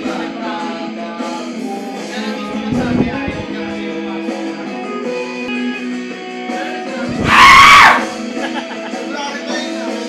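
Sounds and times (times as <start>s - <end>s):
person screaming: 7.1s - 8.2s.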